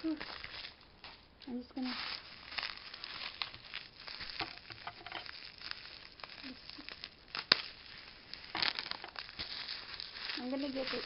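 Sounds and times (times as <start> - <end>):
bubble wrap crinkling: 0.0 - 11.0
bubble wrap snap: 0.0 - 11.0.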